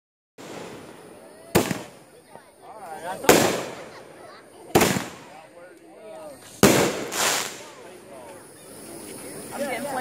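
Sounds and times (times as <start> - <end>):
firework bang: 0.4 - 2.0, 3.2 - 4.0, 4.7 - 5.4, 6.5 - 7.8
faint background noise: 0.4 - 10.0
small firework pop: 1.5 - 2.0.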